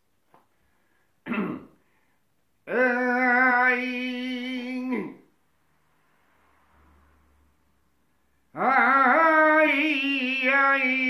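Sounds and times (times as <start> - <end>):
man clearing throat: 1.2 - 1.8
man singing long held note: 2.7 - 5.2, 8.6 - 11.0.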